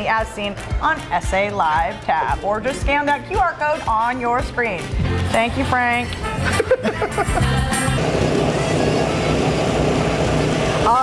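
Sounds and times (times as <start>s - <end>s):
music: 0.0s - 11.0s
people laughing: 6.4s - 7.8s.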